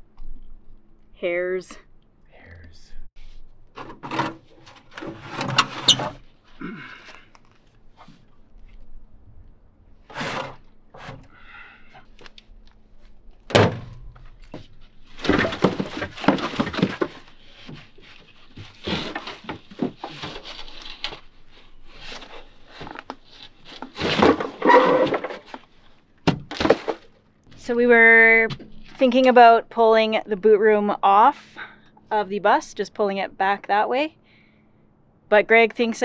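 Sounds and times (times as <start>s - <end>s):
scraping and rattling: 3.7s - 6.4s.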